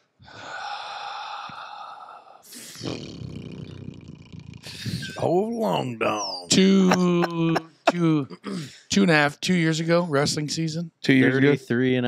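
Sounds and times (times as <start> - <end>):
man sighing: 7.2 - 8.8.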